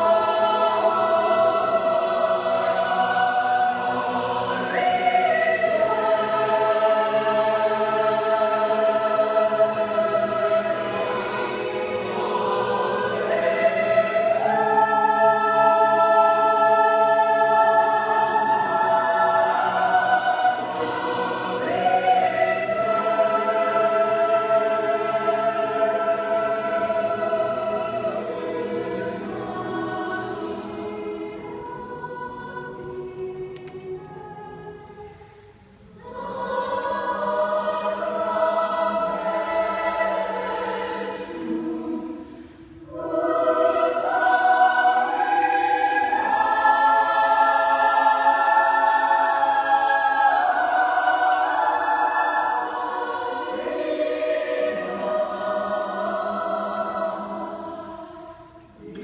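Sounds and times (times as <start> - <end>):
choir singing held chords: 0.0 - 59.0.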